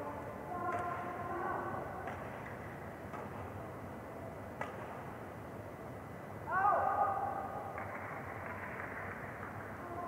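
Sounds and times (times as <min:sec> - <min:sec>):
indoor hall background hum: 0:00.0 - 0:10.0.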